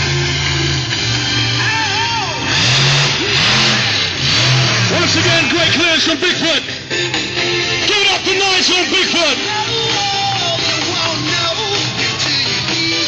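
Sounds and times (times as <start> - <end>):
monster truck engine revving: 0.0 - 13.0
rock music over pa: 0.0 - 13.0.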